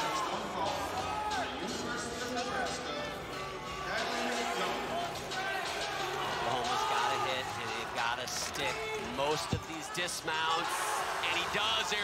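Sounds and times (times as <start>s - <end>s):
men shouting and cheering: 0.0s - 1.8s, 3.7s - 12.0s.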